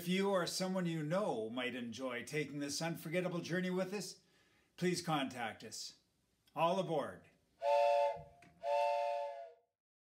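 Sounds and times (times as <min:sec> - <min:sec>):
steam train whistle blasts: 0:07.6 - 0:09.6.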